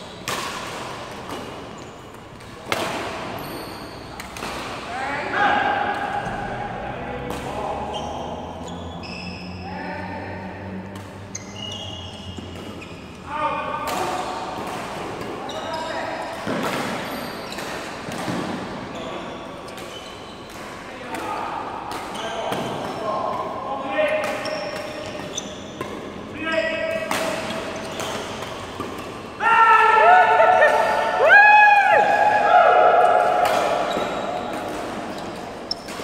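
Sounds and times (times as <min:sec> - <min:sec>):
shoes squeaking on floor: 0:01.7 - 0:02.4, 0:03.3 - 0:04.3, 0:07.7 - 0:09.7, 0:11.2 - 0:13.3, 0:15.4 - 0:16.3, 0:17.0 - 0:18.1, 0:18.8 - 0:20.5, 0:24.4 - 0:29.4, 0:33.7 - 0:36.0
racket striking shuttlecock: 0:04.1 - 0:04.9, 0:33.0 - 0:36.0
voices echoing in hall: 0:04.8 - 0:12.5, 0:13.2 - 0:17.5, 0:20.7 - 0:25.4, 0:26.2 - 0:28.0, 0:29.3 - 0:35.2.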